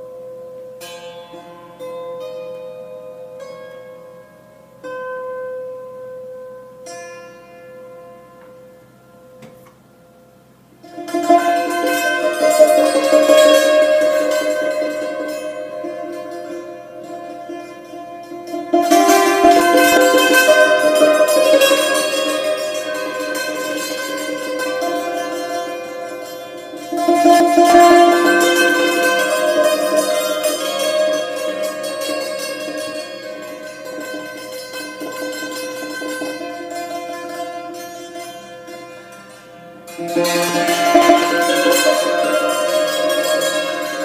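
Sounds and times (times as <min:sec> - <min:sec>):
hammered dulcimer notes: 0:00.8 - 0:06.1, 0:10.8 - 0:44.0.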